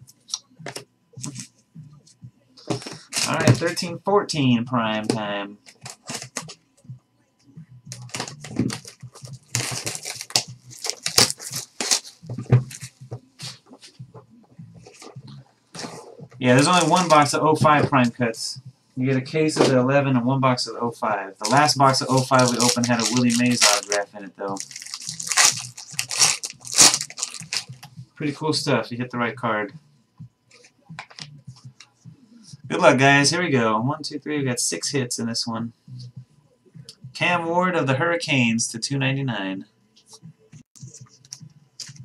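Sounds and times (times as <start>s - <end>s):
shrink wrap tearing and crinkling: 3.0s - 3.8s, 7.9s - 12.9s, 16.6s - 17.2s, 21.4s - 27.8s.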